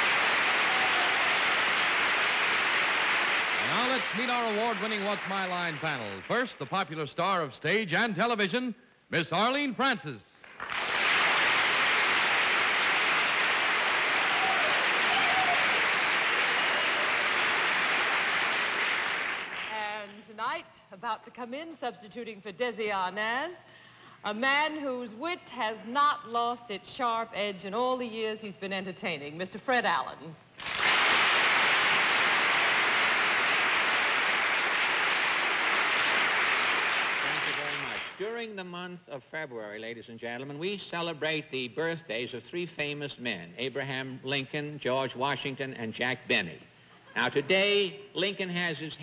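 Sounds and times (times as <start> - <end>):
audience applauding: 0.0 - 6.7, 10.5 - 19.9, 30.6 - 38.2.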